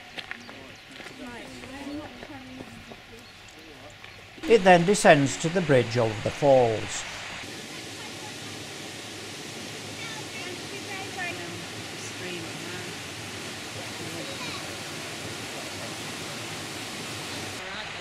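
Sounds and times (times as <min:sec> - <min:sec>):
waterfall rushing: 0:04.4 - 0:18.0
faint voices: 0:09.8 - 0:18.0.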